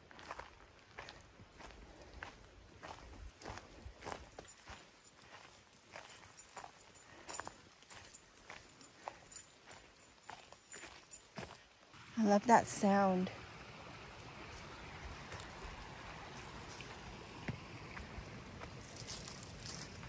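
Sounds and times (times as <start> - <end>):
footsteps crunching on forest trail: 0.0 - 12.0, 14.5 - 20.0.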